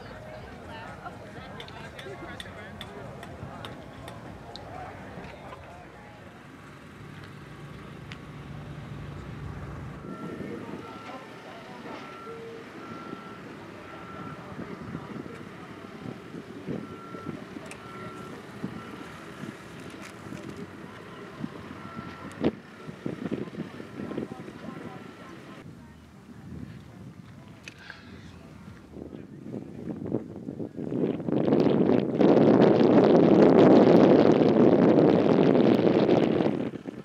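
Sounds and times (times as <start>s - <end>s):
low hum: 0.0s - 26.3s
backup alarm beeping: 8.8s - 19.5s, 20.6s - 25.6s.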